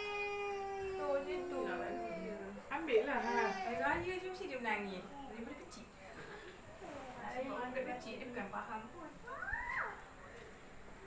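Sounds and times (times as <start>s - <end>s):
child whining: 0.0s - 2.4s, 9.3s - 10.0s.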